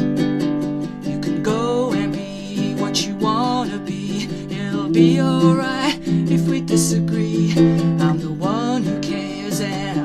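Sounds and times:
person singing: 0:00.0 - 0:10.0
ukulele strumming chords: 0:00.0 - 0:10.0.

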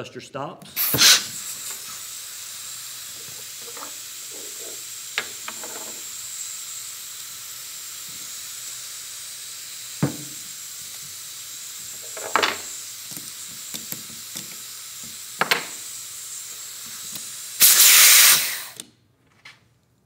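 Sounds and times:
air line snapping on: 0:00.7 - 0:01.8
compressed air hissing: 0:00.7 - 0:18.8.

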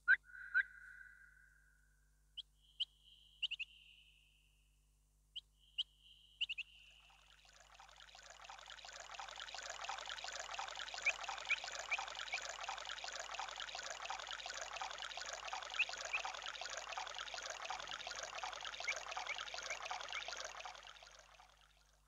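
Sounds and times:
small bird chirping: 0:00.0 - 0:01.4, 0:02.4 - 0:04.0, 0:05.6 - 0:07.0.

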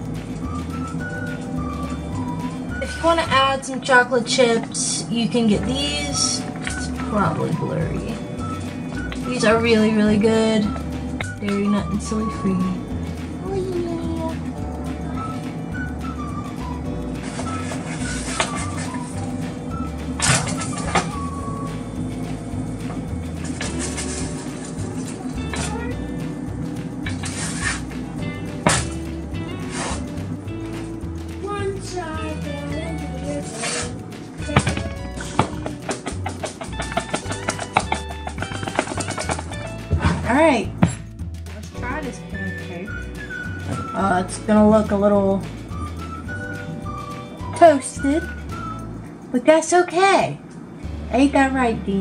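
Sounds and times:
background music: 0:00.0 - 0:52.0.

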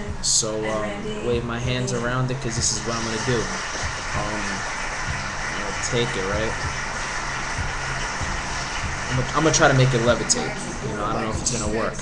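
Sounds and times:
background hum and hiss: 0:00.0 - 0:12.0
low electrical drone: 0:00.0 - 0:12.0.

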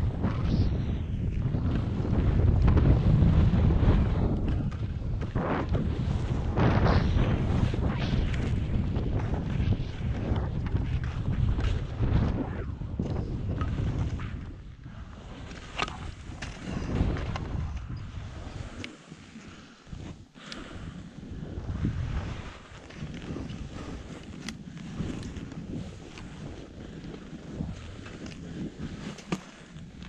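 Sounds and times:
wind buffeting microphone: 0:00.0 - 0:18.8, 0:19.8 - 0:30.0
skis hissing through snow: 0:18.1 - 0:21.3, 0:21.9 - 0:29.8.

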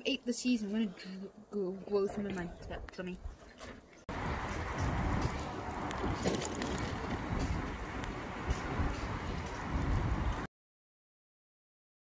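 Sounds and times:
wind buffeting microphone: 0:01.8 - 0:10.5
bicycle tyres rolling on pavement: 0:04.1 - 0:10.5.

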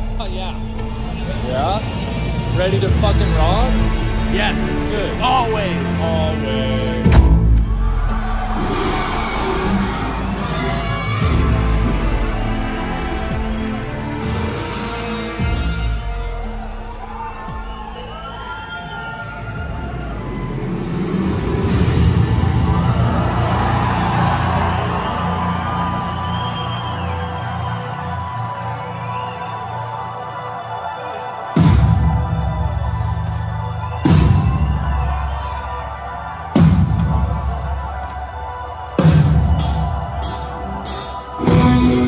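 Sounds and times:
crowd cheering: 0:00.0 - 0:42.0.

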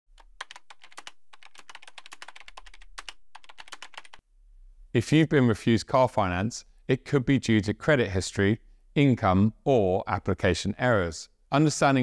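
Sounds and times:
computer keyboard typing: 0:00.2 - 0:04.2.

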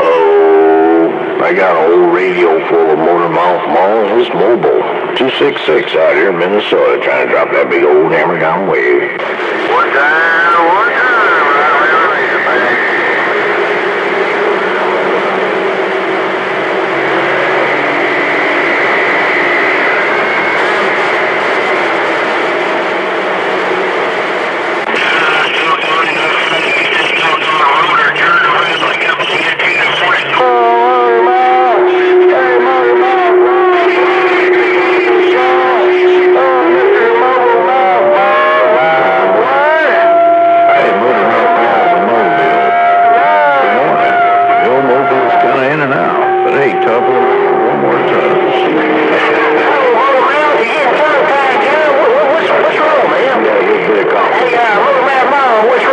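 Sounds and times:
garbled radio voices: 0:00.0 - 0:55.9
radio static: 0:00.0 - 0:55.9
whistling tones: 0:25.2 - 0:30.3.

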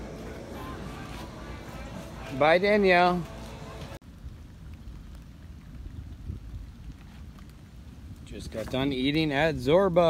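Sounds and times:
wind rumble on microphone: 0:04.0 - 0:10.0.

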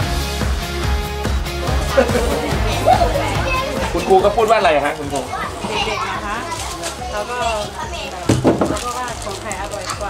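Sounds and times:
children's voices: 0:01.6 - 0:10.0.

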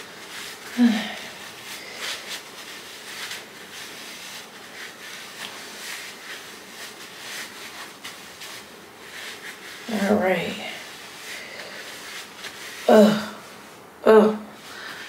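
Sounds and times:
paper towel rustling on skin: 0:00.0 - 0:13.9.

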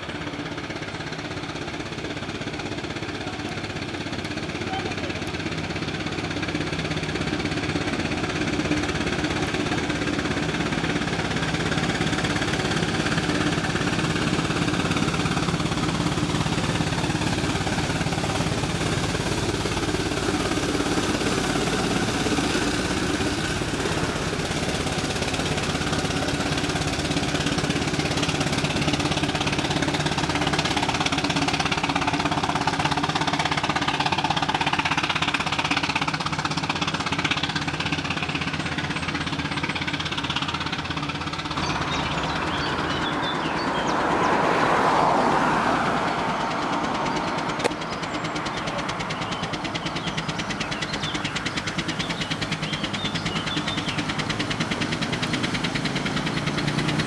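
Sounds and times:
steam bus running: 0:00.0 - 0:57.0.

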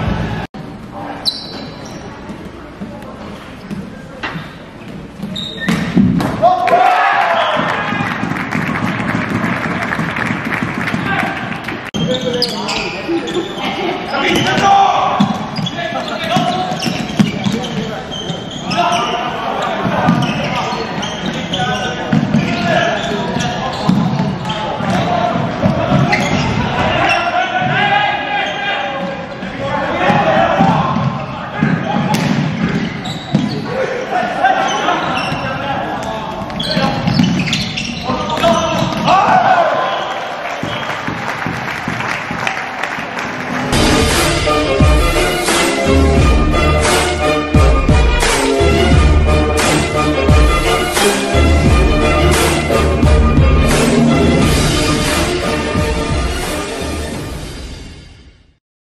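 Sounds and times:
players calling out: 0:05.3 - 0:41.5
indistinct shouts: 0:38.2 - 0:40.9.

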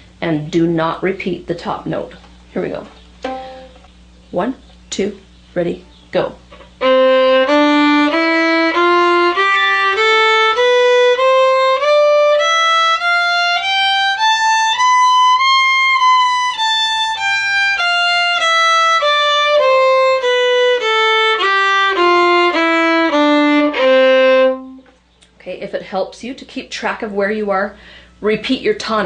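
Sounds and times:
fiddle playing a scale: 0:03.2 - 0:03.8, 0:06.8 - 0:24.8.

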